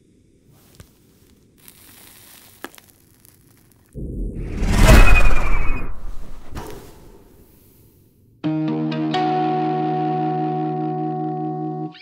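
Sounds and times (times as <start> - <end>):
flying saucer whoosh: 4.0 - 7.4.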